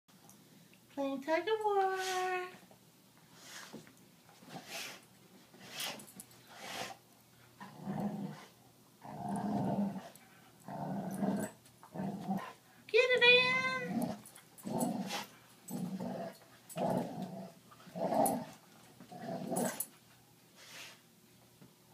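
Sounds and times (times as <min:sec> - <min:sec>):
dogs growling in play: 0:07.6 - 0:12.6, 0:13.8 - 0:20.0.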